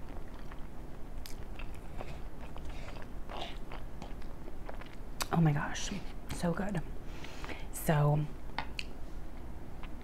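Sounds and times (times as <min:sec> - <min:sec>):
chewing food: 0:00.0 - 0:05.3.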